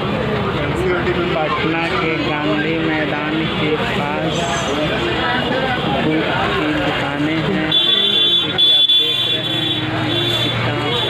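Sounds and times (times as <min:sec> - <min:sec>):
traffic: 0:00.0 - 0:11.0
voices talking: 0:00.0 - 0:11.0.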